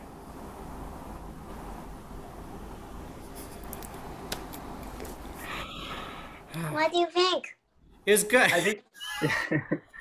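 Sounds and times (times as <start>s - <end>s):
video call background noise: 5.0s - 10.0s.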